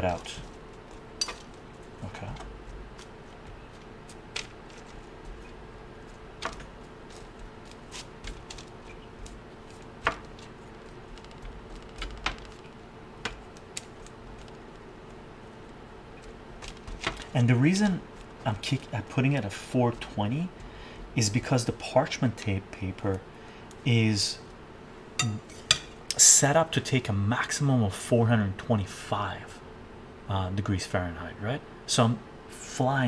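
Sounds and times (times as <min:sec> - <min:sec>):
faint steady hum: 0:00.0 - 0:33.0.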